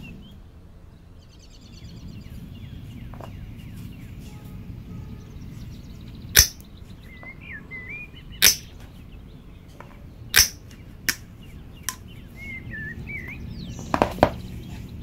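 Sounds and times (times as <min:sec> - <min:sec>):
birds chirping: 0:00.0 - 0:15.0
pliers snapping through cord: 0:06.4 - 0:06.6, 0:08.4 - 0:08.7, 0:10.4 - 0:11.2.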